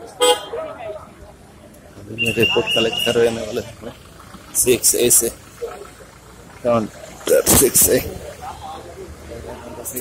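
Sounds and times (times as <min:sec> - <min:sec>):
faint voices: 0:00.0 - 0:10.0
vehicle horn beep: 0:00.2 - 0:00.6, 0:02.2 - 0:03.4.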